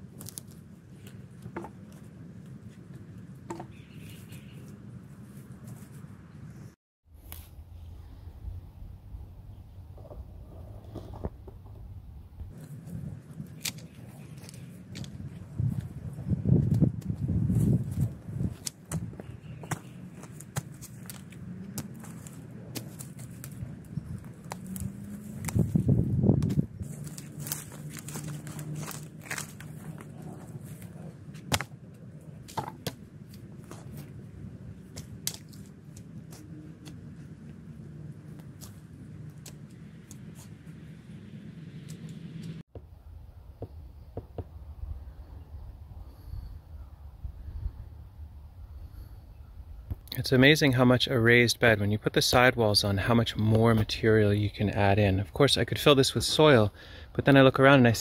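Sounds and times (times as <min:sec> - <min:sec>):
twigs snapping and rustling: 0:00.0 - 0:03.3, 0:12.6 - 0:15.9, 0:16.6 - 0:37.3, 0:38.3 - 0:40.6
dry grass and twigs crunching: 0:00.0 - 0:06.3, 0:12.4 - 0:41.0.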